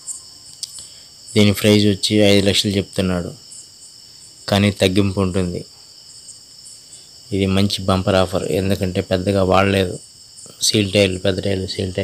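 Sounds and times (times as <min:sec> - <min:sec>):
insects trilling: 0:00.0 - 0:12.0
man talking: 0:00.6 - 0:03.4, 0:04.5 - 0:05.7, 0:07.3 - 0:12.0.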